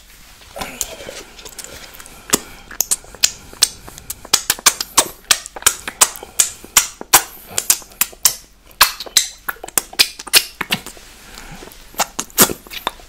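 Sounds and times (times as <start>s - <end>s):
wet lip-smacking: 0.8s - 13.0s.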